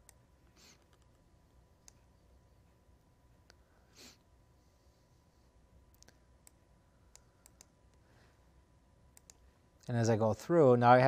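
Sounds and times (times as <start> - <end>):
faint computer mouse clicks: 5.9 - 8.0, 9.2 - 9.4.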